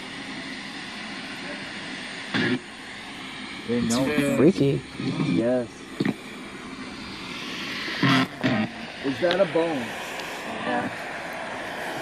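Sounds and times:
radio static: 1.3s - 2.7s, 7.1s - 11.0s.

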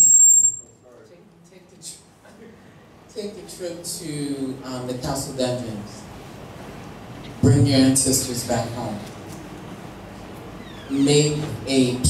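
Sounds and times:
high bell-like metallic ring: 0.0s - 0.7s.

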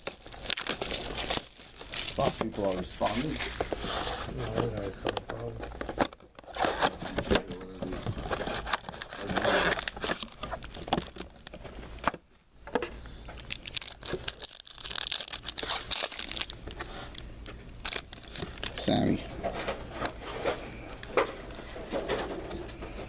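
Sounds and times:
foil wrappers crinkling and tearing: 0.0s - 12.1s, 13.3s - 23.0s.

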